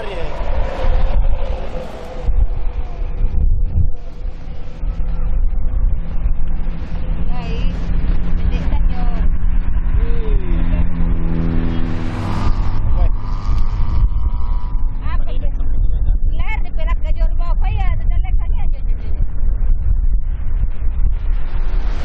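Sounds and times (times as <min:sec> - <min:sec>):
people's voices: 0:00.0 - 0:04.2, 0:08.4 - 0:09.3, 0:10.0 - 0:13.8
steady engine drone: 0:00.0 - 0:22.0
wind rumbling on microphone: 0:00.0 - 0:22.0.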